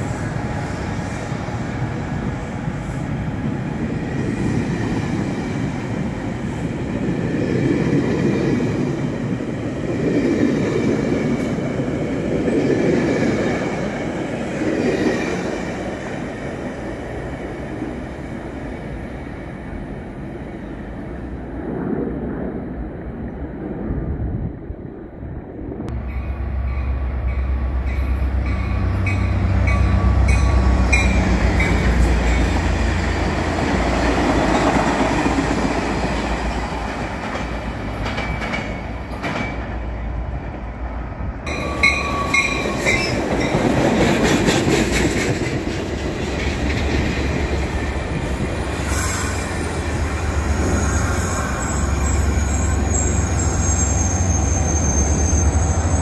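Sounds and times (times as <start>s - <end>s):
diesel locomotive engine hum: 0.0s - 22.5s, 23.4s - 56.0s
train wheels rumbling on rail: 0.0s - 56.0s
thin high squeal: 50.6s - 56.0s.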